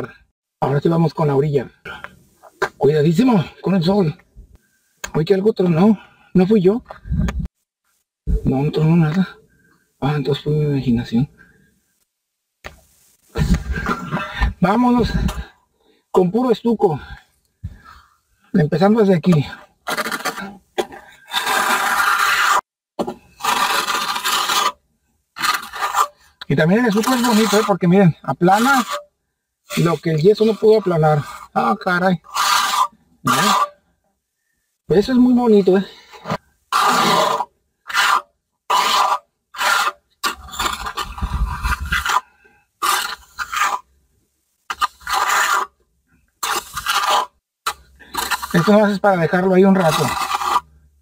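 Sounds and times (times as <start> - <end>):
trowel scraping stucco on wall: 18.7 - 24.8, 25.4 - 29.1, 29.7 - 33.8, 35.0 - 43.9, 44.7 - 45.8, 46.4 - 50.8.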